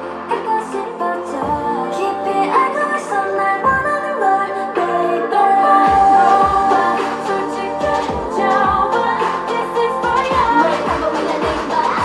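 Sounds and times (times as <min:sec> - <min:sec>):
dance-pop backing track: 0:00.0 - 0:12.0
woman singing: 0:00.0 - 0:12.0.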